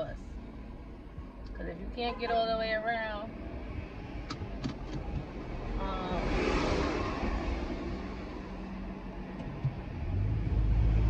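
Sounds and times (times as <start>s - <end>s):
car engine rumble inside cabin: 0.0s - 6.2s, 6.8s - 11.0s.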